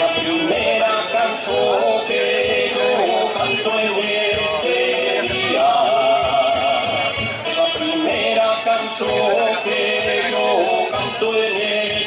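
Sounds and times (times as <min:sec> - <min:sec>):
folk dance band playing: 0:00.0 - 0:12.0
jingling percussion: 0:00.0 - 0:12.0.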